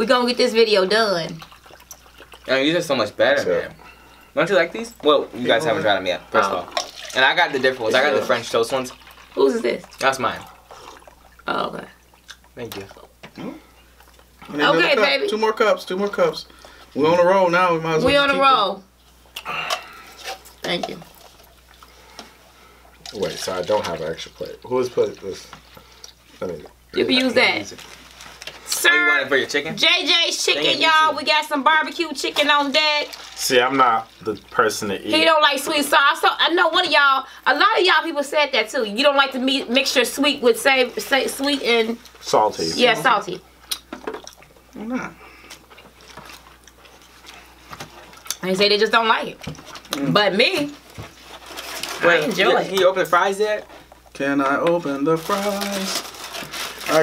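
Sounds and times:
juice trickling into plastic cup: 0:00.9 - 0:03.4, 0:06.4 - 0:13.0, 0:22.9 - 0:29.7, 0:32.6 - 0:35.2, 0:54.8 - 0:57.0
chewing: 0:01.4 - 0:02.5, 0:12.1 - 0:14.5, 0:43.6 - 0:48.4.

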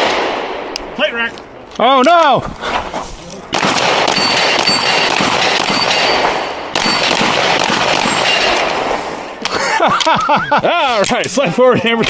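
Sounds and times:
pistol shots: 0:00.0 - 0:01.0, 0:03.5 - 0:09.4
steel plates ringing: 0:04.1 - 0:07.2.

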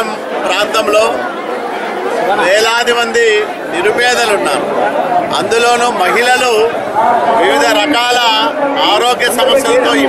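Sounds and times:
people chattering: 0:00.0 - 0:10.0
man talking: 0:02.3 - 0:04.7, 0:05.3 - 0:10.0.

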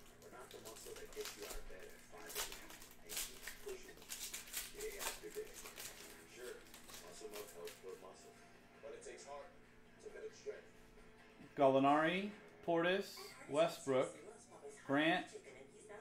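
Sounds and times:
foil wrapper crinkling and tearing: 0:00.0 - 0:08.1.

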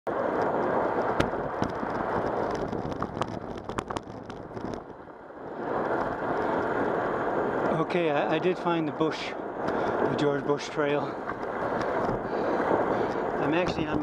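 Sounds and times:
tyres rolling on asphalt: 0:00.1 - 0:14.0
wind on microphone: 0:00.1 - 0:14.0.

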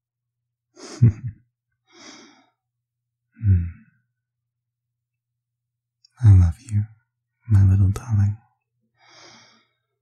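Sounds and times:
man laughing softly: 0:00.8 - 0:01.5
quiet breath: 0:01.8 - 0:02.7, 0:08.8 - 0:10.0.

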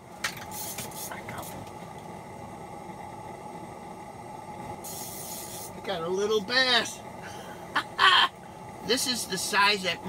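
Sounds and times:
pressurized lantern hissing: 0:00.2 - 0:10.0.

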